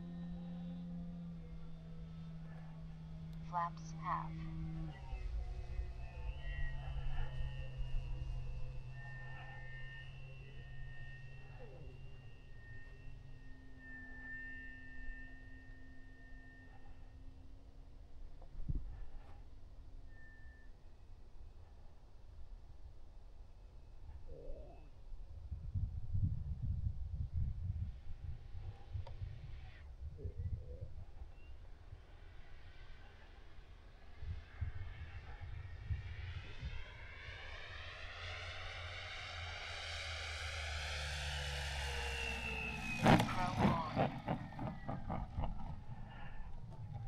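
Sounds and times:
model airplane motor: 0.0s - 20.9s, 31.0s - 47.0s.

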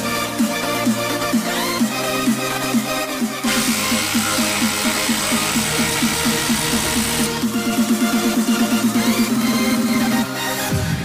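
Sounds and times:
electronic dance music: 0.0s - 11.0s
impact driver hammering: 3.4s - 7.3s.

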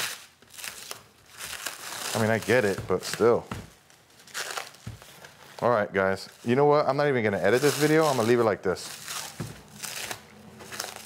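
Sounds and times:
plastic wrap crinkling and tearing: 0.0s - 11.0s.

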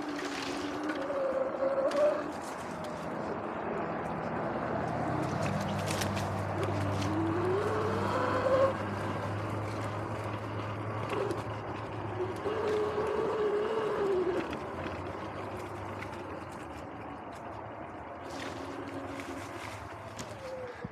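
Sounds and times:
electric motor whining: 6.3s - 16.7s.

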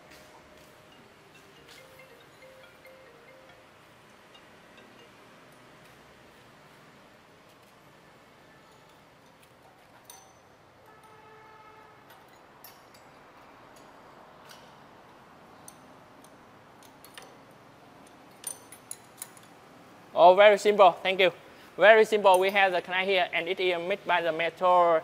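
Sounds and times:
spanner clinking on bolts: 15.6s - 19.6s.

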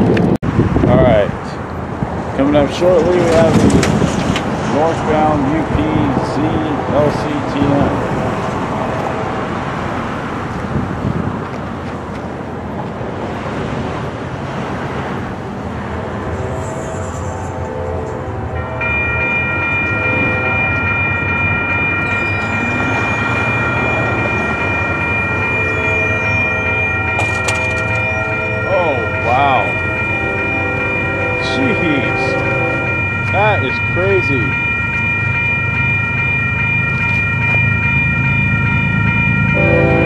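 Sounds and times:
road traffic rumble: 0.0s - 40.0s
railroad crossing warning bell: 2.4s - 11.3s, 15.4s - 40.0s.

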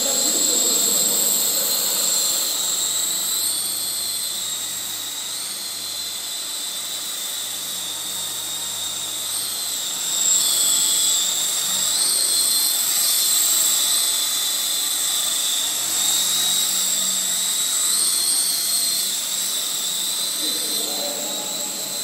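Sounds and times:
toy helicopter motor whine: 0.0s - 22.0s.

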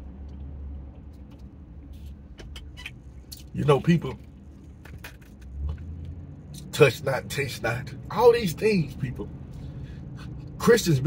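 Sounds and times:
car engine hum inside cabin: 0.0s - 11.0s.

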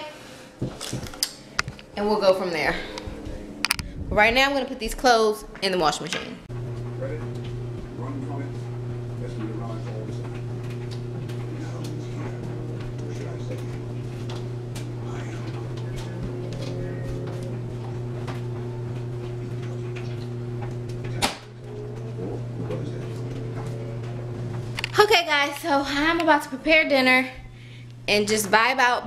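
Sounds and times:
steady hum: 0.0s - 29.0s.

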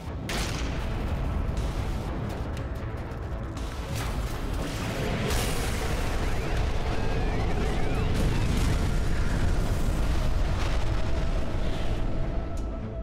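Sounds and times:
heavy explosion rumble: 4.0s - 12.4s.

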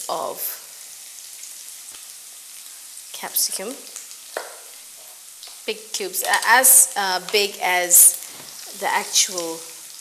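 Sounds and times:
vegetables sizzling in oil: 0.0s - 10.0s.

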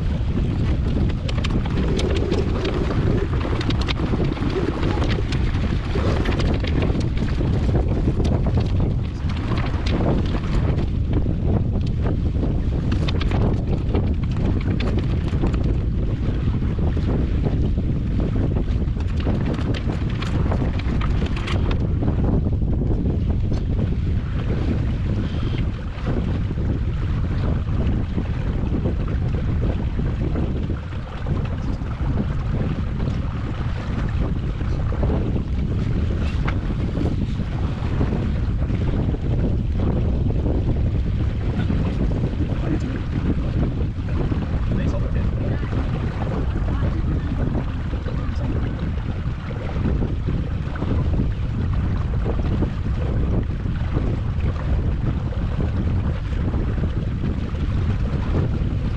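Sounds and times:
water washing along hull: 0.0s - 58.9s
wind buffeting microphone: 0.0s - 58.9s.

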